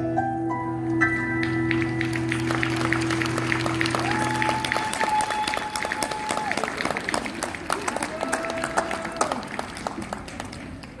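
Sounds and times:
audience applauding: 1.4s - 11.0s.

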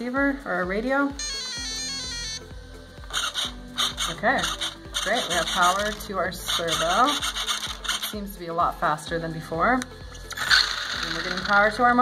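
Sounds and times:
electronic beeping tune: 1.2s - 2.5s
steering servo buzzing: 3.0s - 8.1s, 10.3s - 11.7s.

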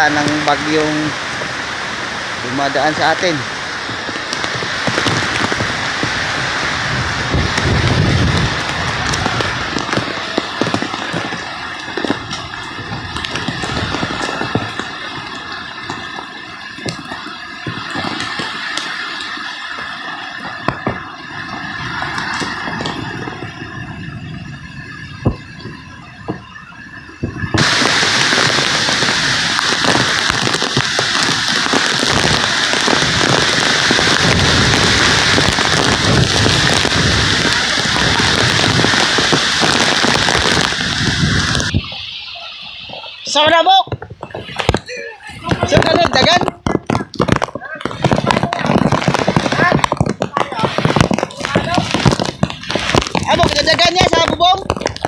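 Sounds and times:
heavy rain: 0.0s - 55.0s
raindrops tapping on metal roofing: 0.0s - 55.0s
wind: 0.0s - 55.0s.

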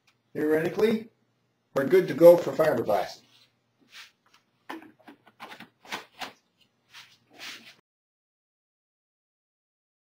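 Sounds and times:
cloth rubbing and scraping: 3.2s - 4.4s, 6.9s - 7.8s.

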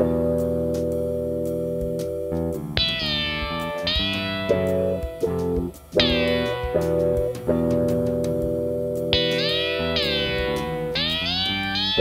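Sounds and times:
ambient synthesizer music: 0.0s - 12.0s.

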